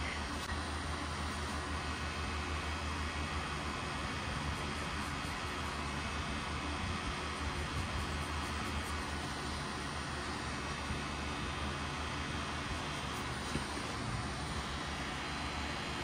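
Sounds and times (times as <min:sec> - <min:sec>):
tattoo machine motor hum: 0:02.0 - 0:16.0.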